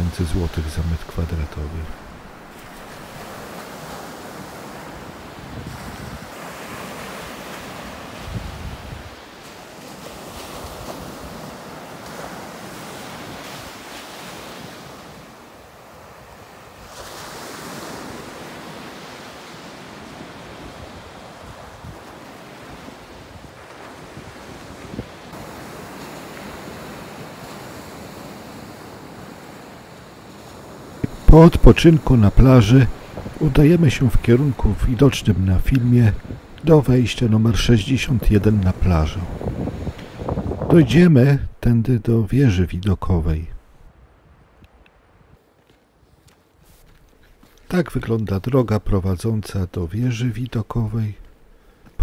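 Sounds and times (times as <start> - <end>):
surf breaking on a beach: 0.0 - 41.4
wind gusts on microphone: 0.0 - 41.7.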